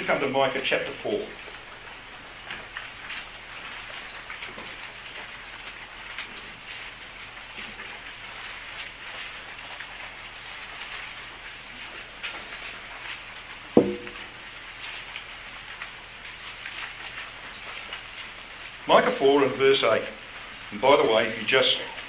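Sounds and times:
short sharp thud: 13.8s - 14.2s.

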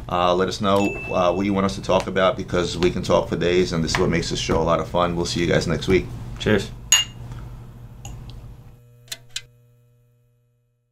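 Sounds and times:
neon sign electric hum: 0.0s - 10.9s.

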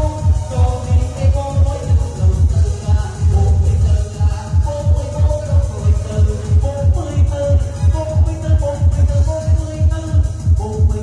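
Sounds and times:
heavy kick drum: 0.0s - 11.0s
upbeat dance music: 0.0s - 11.0s.

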